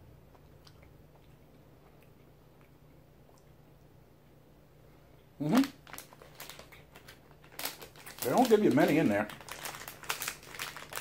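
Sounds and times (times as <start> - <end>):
plastic bag crinkling: 5.4 - 11.0.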